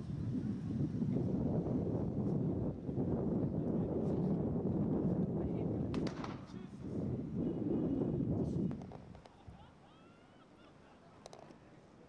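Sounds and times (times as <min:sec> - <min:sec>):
wind buffeting microphone: 0:00.0 - 0:09.2
sharp cracks: 0:06.0 - 0:06.5.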